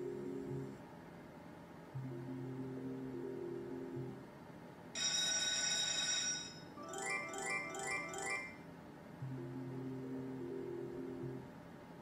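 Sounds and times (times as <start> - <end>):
bright ringing chime: 5.0 - 8.6.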